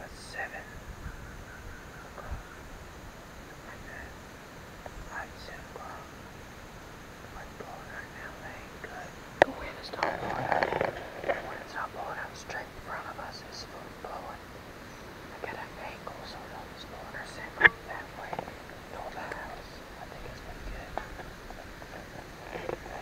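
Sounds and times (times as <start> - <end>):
man whispering: 0.0 - 0.7, 2.2 - 2.6, 3.5 - 4.2, 5.0 - 6.2, 7.4 - 14.4, 15.3 - 23.0.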